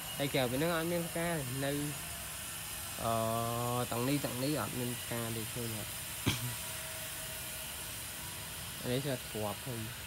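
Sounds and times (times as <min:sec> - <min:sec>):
open-air background hiss: 0:00.0 - 0:10.0.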